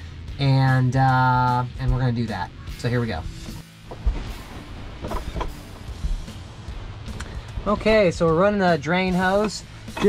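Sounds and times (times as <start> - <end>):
background music with drums: 0.0 - 10.0.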